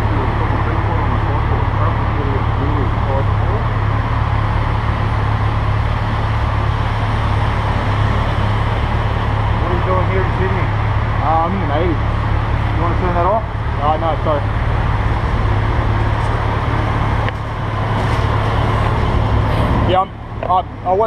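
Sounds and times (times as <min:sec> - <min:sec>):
passing street traffic: 0:00.0 - 0:21.0.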